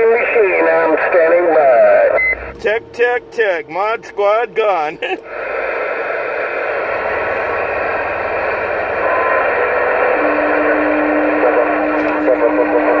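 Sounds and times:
radio static: 0:00.0 - 0:13.0
steady low tone: 0:01.7 - 0:13.0.

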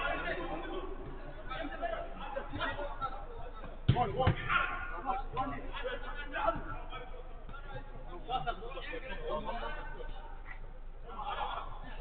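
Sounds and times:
football being kicked: 0:03.8 - 0:04.5.

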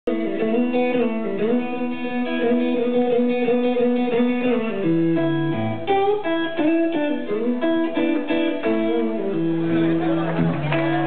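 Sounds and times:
electric guitar with string bends: 0:00.1 - 0:11.0.

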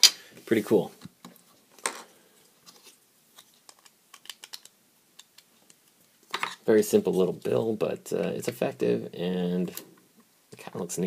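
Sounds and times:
plastic toy bricks clicking: 0:03.7 - 0:05.4.

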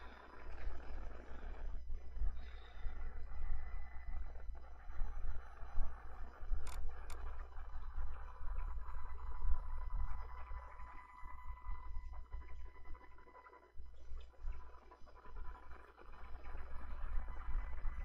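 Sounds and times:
faint steady whine: 0:00.0 - 0:18.0.

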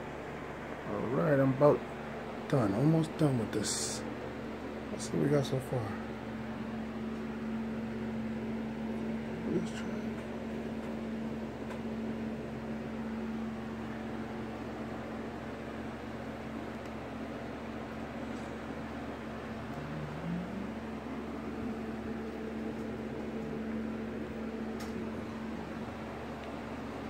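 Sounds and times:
electrical hum and whir: 0:00.0 - 0:27.0.

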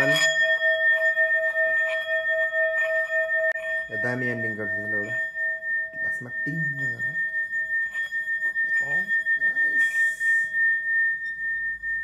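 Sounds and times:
metal singing bowl ringing: 0:00.0 - 0:12.0.

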